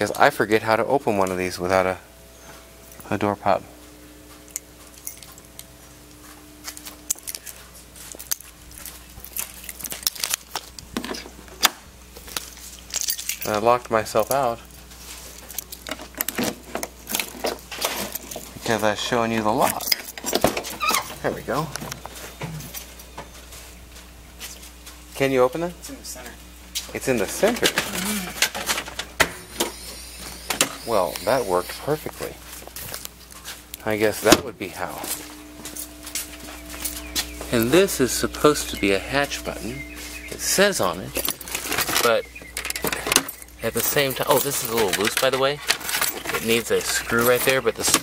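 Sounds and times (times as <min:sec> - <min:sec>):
faint steady hum: 0:00.0 - 0:48.0.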